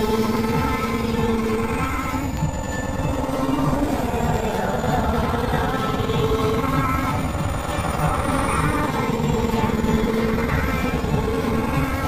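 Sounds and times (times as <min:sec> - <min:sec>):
distorted processed music: 0:00.0 - 0:12.0.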